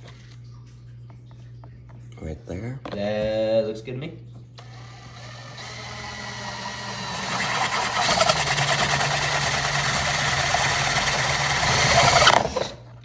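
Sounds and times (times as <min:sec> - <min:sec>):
cordless drill boring into plastic: 0:04.6 - 0:12.8.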